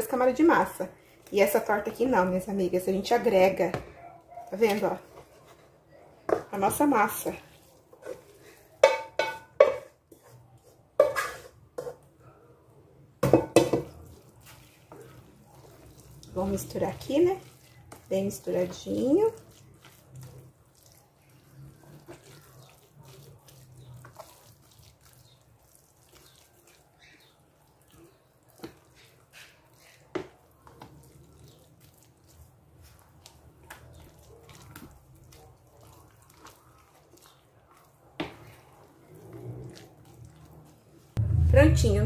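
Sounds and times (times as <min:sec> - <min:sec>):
wet batter squelching: 0:00.0 - 0:09.0, 0:13.8 - 0:42.0
spoon knocking and scraping tub: 0:03.2 - 0:04.0, 0:04.6 - 0:12.1, 0:13.2 - 0:20.4, 0:21.9 - 0:24.9, 0:28.5 - 0:31.6
faint low hum: 0:41.2 - 0:42.0.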